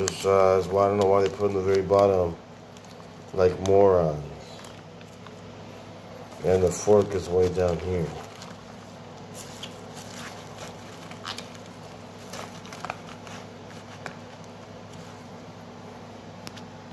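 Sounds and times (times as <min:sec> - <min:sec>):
lettuce rustling: 0:00.0 - 0:05.5, 0:06.2 - 0:15.3
plastic container crinkling: 0:00.0 - 0:05.5, 0:06.2 - 0:15.2
steady low hum: 0:00.0 - 0:16.9.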